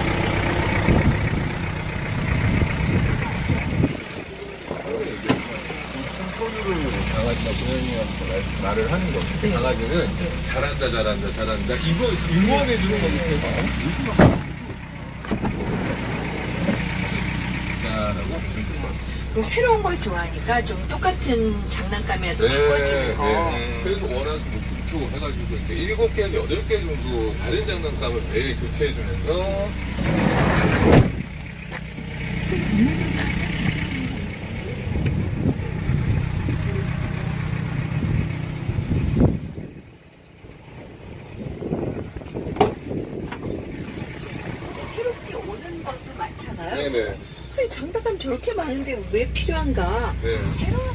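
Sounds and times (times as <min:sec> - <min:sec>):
diesel engine idling: 0:00.0 - 0:50.9.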